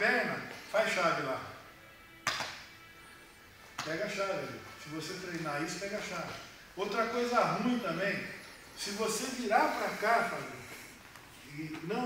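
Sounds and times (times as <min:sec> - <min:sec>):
sharp slap: 0:02.2 - 0:02.7.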